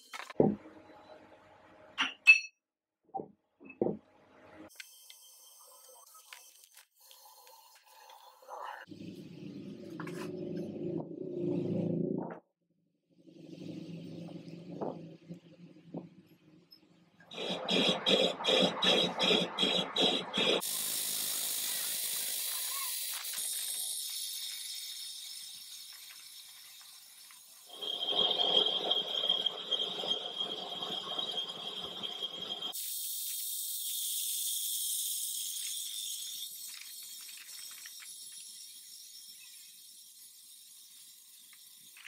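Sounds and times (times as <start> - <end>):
metal lathe cutting steel: 17.3 - 20.7, 27.6 - 32.8
hiss: 17.4 - 28.6, 32.7 - 42.0
high squeal from lathe tool: 27.6 - 32.8.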